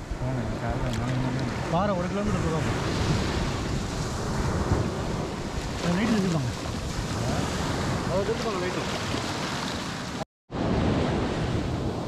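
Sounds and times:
waves washing on wet sand: 0.0s - 12.0s
man talking: 5.8s - 6.6s.

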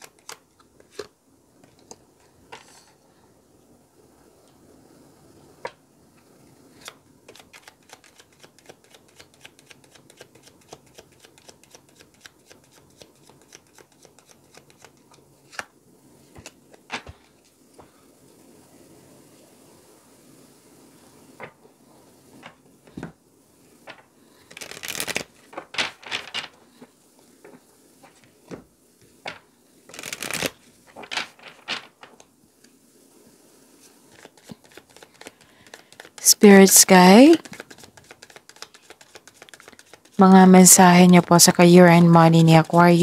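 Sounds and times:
cards shuffled by hand: 0.0s - 2.0s, 6.8s - 15.7s, 16.3s - 17.6s, 23.9s - 26.6s, 29.3s - 32.3s, 33.9s - 43.0s.

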